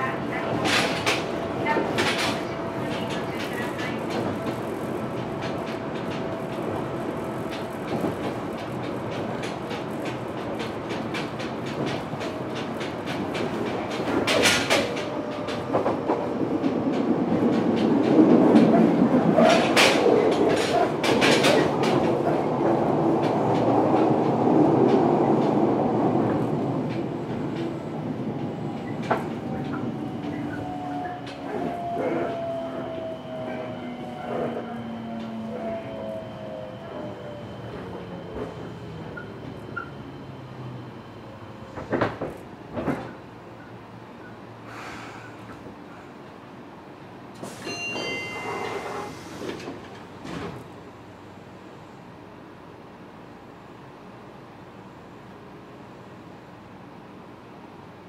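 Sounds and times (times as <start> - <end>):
train rumble: 0.0 - 53.5.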